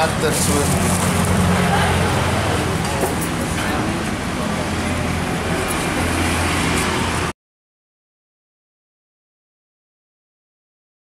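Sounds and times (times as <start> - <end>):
road traffic: 0.0 - 7.4.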